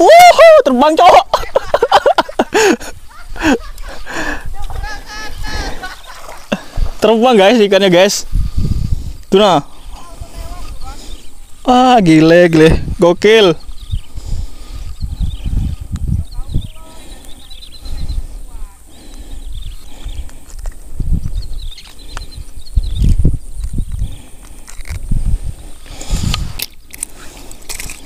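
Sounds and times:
wind rumbling on microphone: 0:01.3 - 0:28.0.

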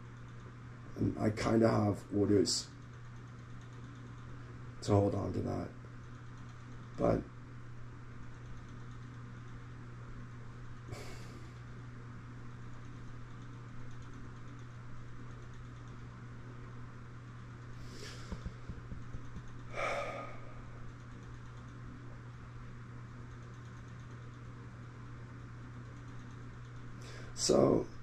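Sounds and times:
steady low hum: 0:00.0 - 0:28.0.

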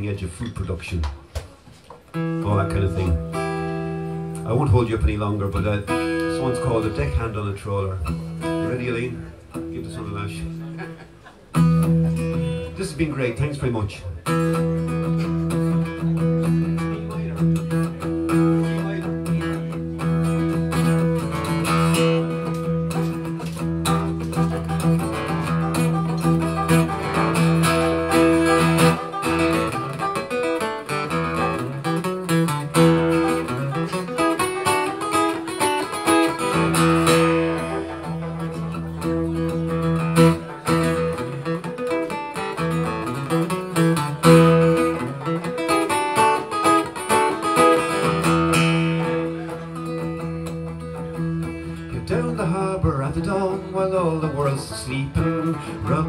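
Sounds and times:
guitar playing: 0:00.0 - 0:56.0.

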